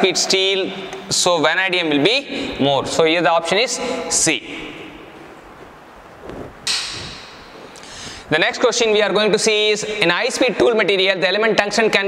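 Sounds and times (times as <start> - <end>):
room hiss: 0.8 - 10.5.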